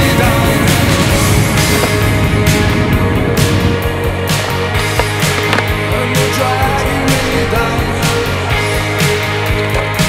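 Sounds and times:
heavy rock music: 0.0 - 10.0
skateboard grinding on concrete: 0.5 - 10.0
skateboard clack: 4.4 - 7.1.

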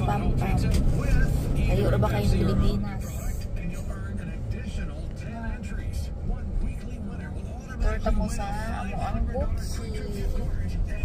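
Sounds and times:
car engine hum: 0.0 - 11.0
low road rumble: 0.0 - 11.0
faint voice: 1.0 - 11.0.

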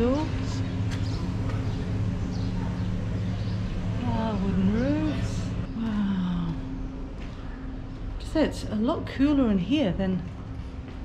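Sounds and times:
machine humming: 0.0 - 8.9.

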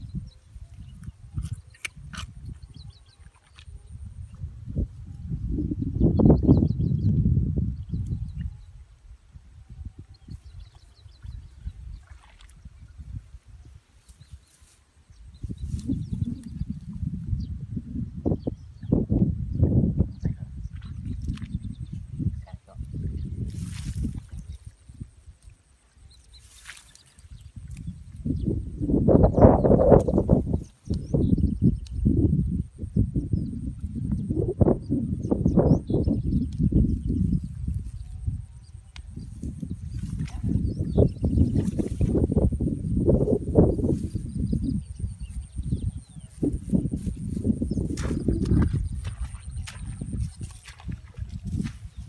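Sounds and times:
dry grass rustling and crackling: 14.0 - 16.8, 23.4 - 25.4, 26.2 - 28.4, 41.3 - 52.0.

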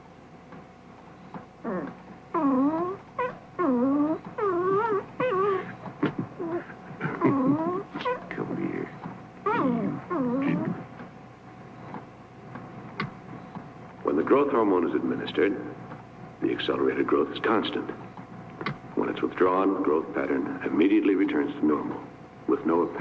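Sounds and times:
puppy whining and whimpering: 1.6 - 8.4, 9.4 - 10.9.

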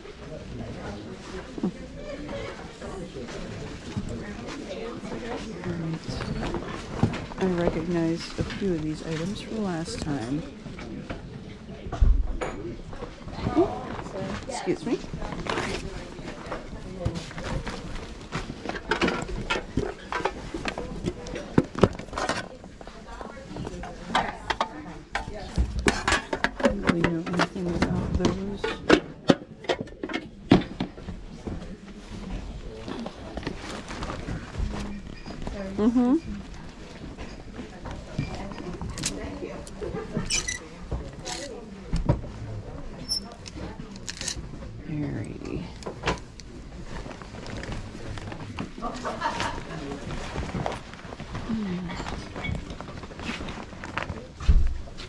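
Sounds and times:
murmur of people chatting: 0.0 - 55.0
people talking: 0.7 - 6.8, 7.4 - 10.5, 13.4 - 15.9, 26.6 - 28.8, 35.6 - 36.4, 44.9 - 45.8, 51.5 - 52.2.

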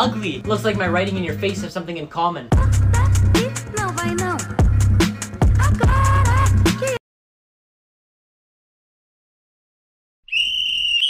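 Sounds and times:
shrill whistle blast: 10.2 - 11.0.

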